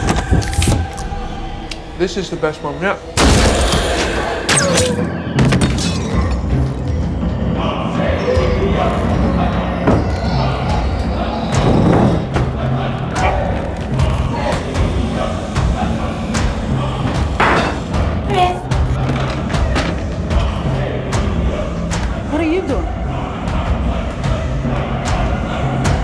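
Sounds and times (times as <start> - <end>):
tense film score music: 0.0 - 26.0.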